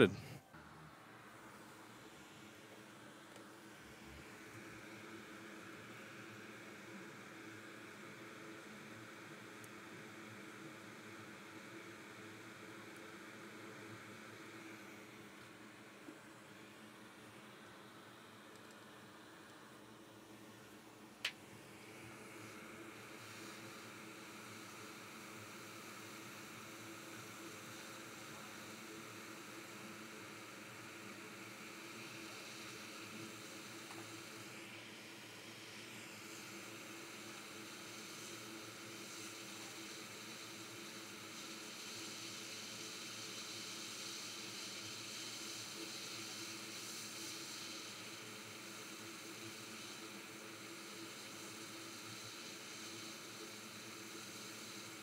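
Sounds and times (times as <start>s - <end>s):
hot air station hissing: 0.0s - 55.0s.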